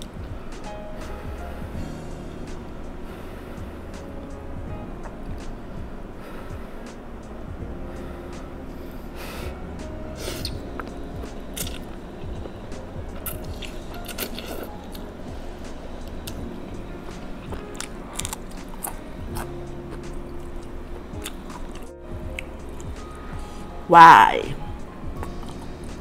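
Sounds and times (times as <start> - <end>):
soft background music: 0.0 - 26.0
wet chewing and slurping noodles: 13.2 - 15.1, 17.4 - 20.5.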